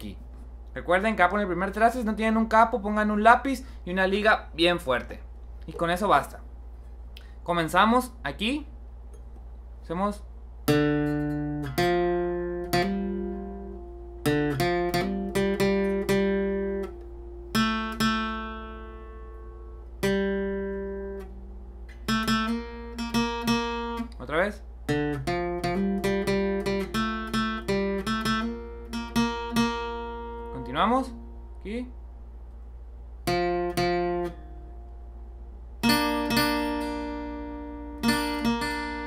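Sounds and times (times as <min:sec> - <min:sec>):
acoustic guitar picked melody: 0:10.6 - 0:24.2, 0:24.8 - 0:31.6, 0:33.2 - 0:39.0.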